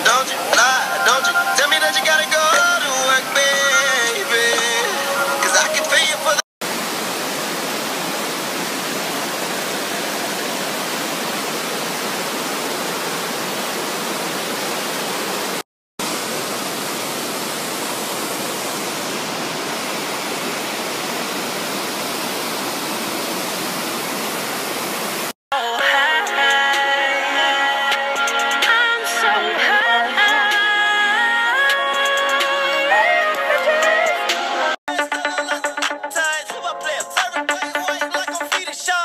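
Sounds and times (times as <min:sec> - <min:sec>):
water rushing over rocks: 0:00.0 - 0:25.3.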